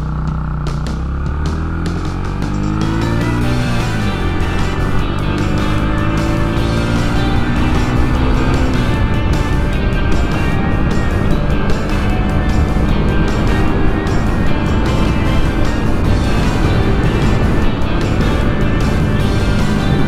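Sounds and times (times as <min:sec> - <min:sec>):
background music: 0:00.0 - 0:20.0
motorcycle engine running: 0:00.0 - 0:20.0.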